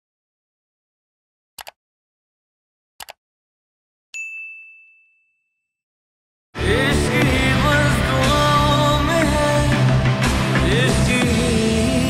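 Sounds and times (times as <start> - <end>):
notification bell ding: 4.2 - 5.8.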